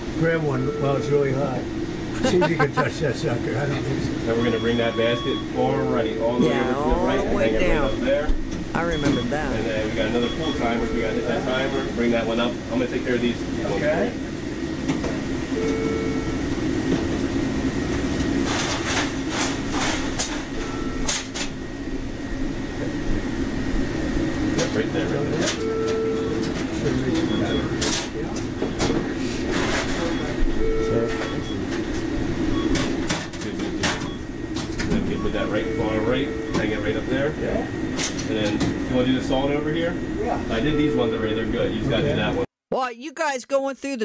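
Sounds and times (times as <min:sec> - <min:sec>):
steady hum: 0:00.0 - 0:21.0, 0:21.7 - 0:31.0
indistinct voices: 0:06.1 - 0:08.0, 0:08.8 - 0:09.8.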